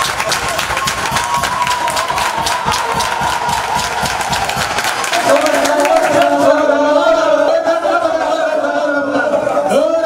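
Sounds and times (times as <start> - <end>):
rhythmic clapping: 0.0 - 7.0
crowd voices: 0.0 - 10.0.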